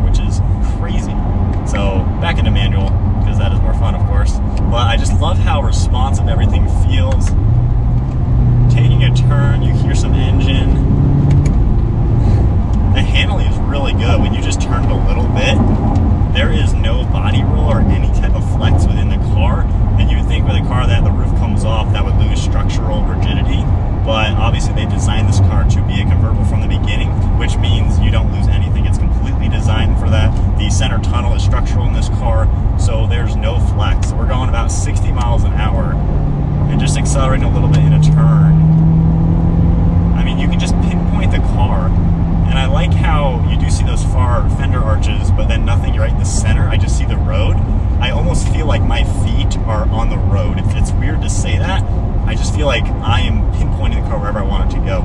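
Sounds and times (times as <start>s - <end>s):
man talking: 0.0s - 7.4s, 8.7s - 10.9s, 12.8s - 15.7s, 16.3s - 36.0s, 36.7s - 38.6s, 40.2s - 55.0s
car engine and tyre rumble: 0.0s - 55.0s.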